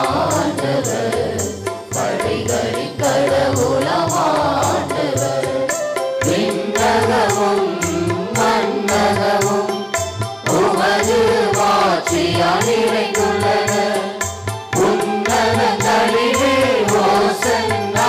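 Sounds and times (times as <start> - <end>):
instrumental accompaniment: 0.0 - 18.0
voices singing a hymn: 0.0 - 18.0.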